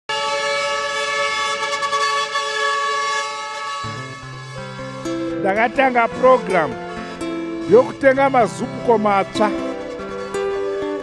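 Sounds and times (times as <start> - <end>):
vehicle horn blast: 0.1 - 11.0
music: 3.8 - 11.0.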